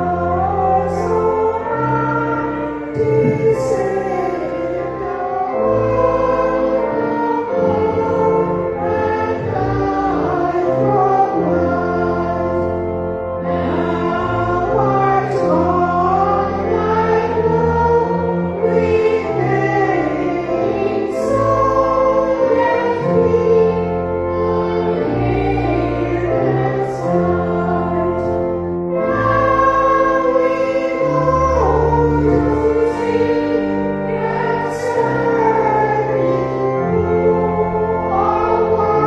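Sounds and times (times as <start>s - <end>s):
choir singing held notes: 0.0s - 39.0s.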